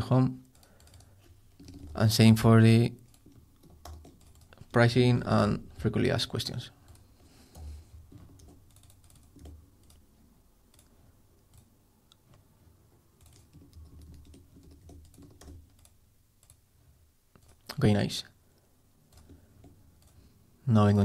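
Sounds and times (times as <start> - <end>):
keyboard typing and clicking: 0.4 - 2.1, 3.0 - 4.7, 6.8 - 10.1, 10.7 - 11.7, 13.2 - 16.6, 17.4 - 17.7, 19.1 - 20.2.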